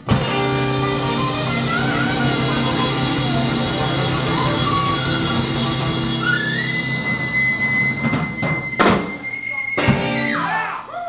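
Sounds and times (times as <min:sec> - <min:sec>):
drum and cymbal hits: 0:00.0 - 0:10.6
live blues band: 0:00.0 - 0:10.9
held high note: 0:00.4 - 0:10.9.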